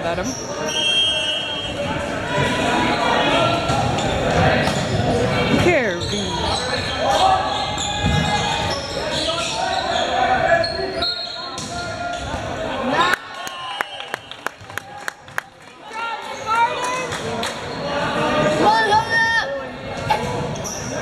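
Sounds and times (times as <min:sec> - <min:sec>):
echoing voices in a hall: 0:00.0 - 0:21.0
shoe squeak: 0:00.2 - 0:01.8, 0:05.9 - 0:11.6, 0:20.3 - 0:21.0.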